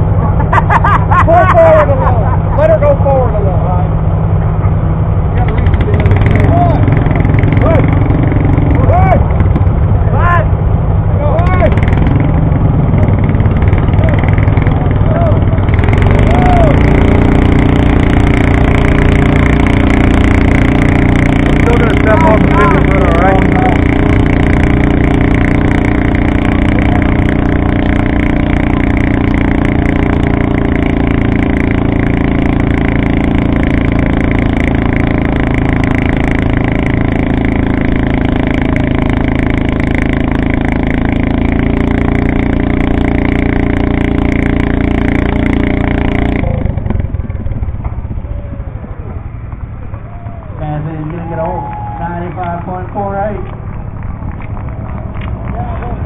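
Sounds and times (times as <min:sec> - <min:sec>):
garden tractor engine running: 0:00.0 - 0:56.0.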